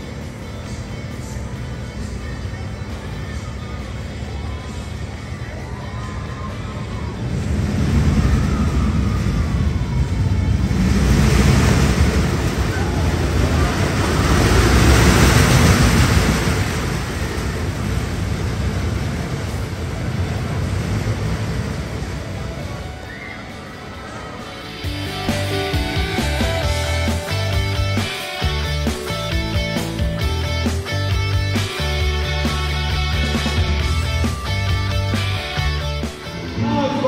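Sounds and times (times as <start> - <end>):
roller coaster rumbling on track: 0.0 - 37.0.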